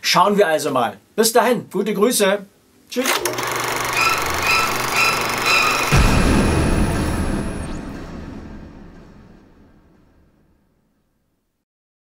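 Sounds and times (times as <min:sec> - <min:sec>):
pulsing musical logo sting: 0:04.1 - 0:10.6
deep boom: 0:04.3 - 0:10.7.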